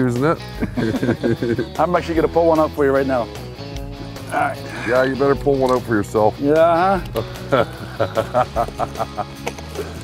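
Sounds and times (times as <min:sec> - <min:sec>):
background music with held notes: 0:00.0 - 0:10.0
man chuckling: 0:00.6 - 0:01.7, 0:07.2 - 0:10.0.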